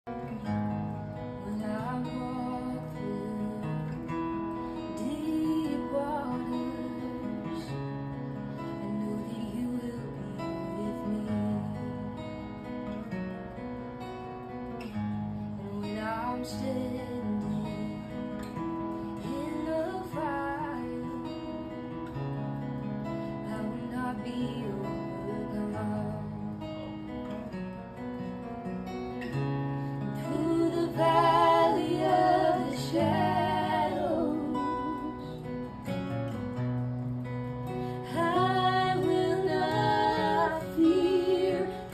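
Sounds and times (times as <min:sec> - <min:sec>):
acoustic guitar strumming: 0:00.1 - 0:41.9
woman singing: 0:01.4 - 0:08.0, 0:08.6 - 0:12.3, 0:15.6 - 0:21.8, 0:23.2 - 0:26.7, 0:30.0 - 0:35.9, 0:37.7 - 0:41.9
group singing in harmony: 0:30.2 - 0:35.7, 0:38.0 - 0:41.9.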